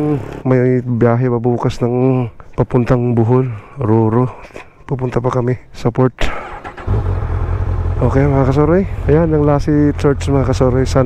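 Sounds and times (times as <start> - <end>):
motorcycle engine idling: 6.9 - 11.0.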